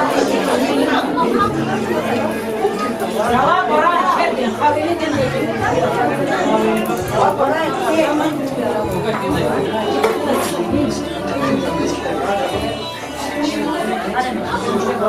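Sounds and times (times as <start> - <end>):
hubbub of overlapping conversation: 0.0 - 15.0.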